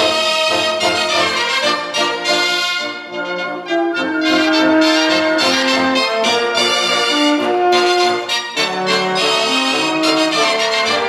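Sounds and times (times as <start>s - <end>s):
wind band playing: 0.0s - 11.0s.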